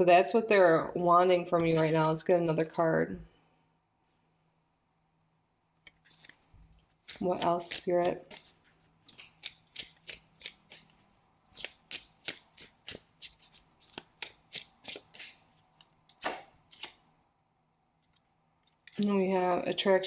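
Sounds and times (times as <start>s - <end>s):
cards being shuffled by hand: 1.6s - 2.2s, 6.0s - 17.0s.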